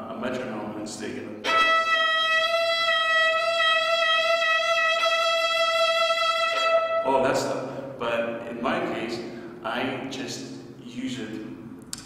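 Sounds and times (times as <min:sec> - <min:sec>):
violin holding high note: 0:01.4 - 0:07.8.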